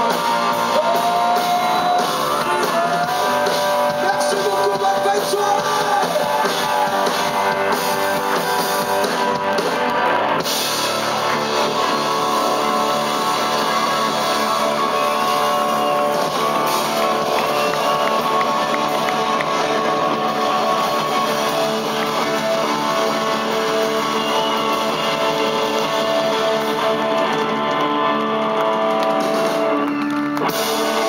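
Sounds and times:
drum kit: 0.0s - 31.0s
electric guitar: 0.0s - 31.0s.

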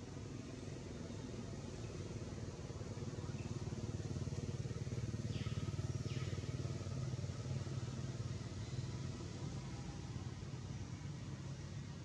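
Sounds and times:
engine running low rumble: 0.0s - 12.0s.

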